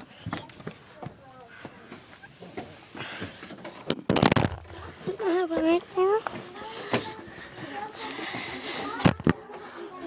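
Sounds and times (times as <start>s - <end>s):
faint voices: 0.0s - 10.0s
microphone handling rustle: 2.4s - 4.9s.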